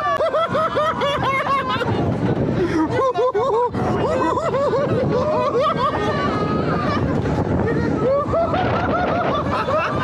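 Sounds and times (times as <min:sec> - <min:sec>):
wind rushing across microphone: 0:00.0 - 0:10.0
man laughing: 0:02.6 - 0:06.2.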